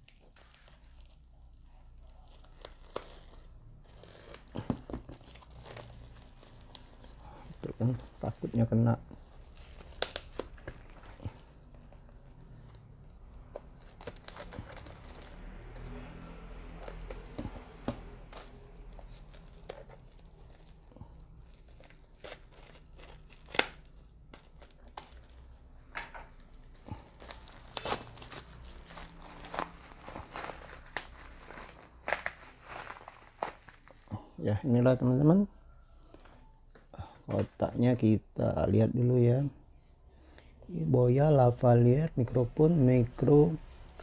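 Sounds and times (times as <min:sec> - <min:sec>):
plastic wrapping crinkling: 0:00.0 - 0:34.4.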